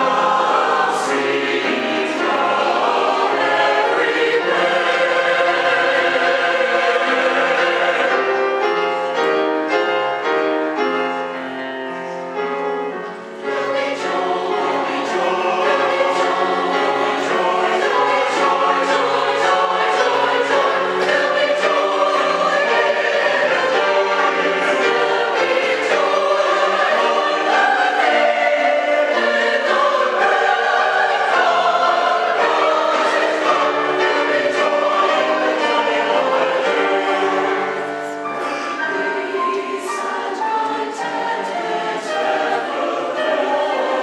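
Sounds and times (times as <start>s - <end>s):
church choir singing: 0.0s - 44.0s.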